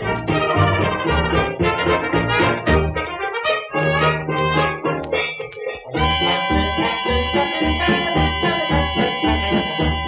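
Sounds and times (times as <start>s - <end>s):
dance orchestra instrumental record: 0.0s - 10.0s.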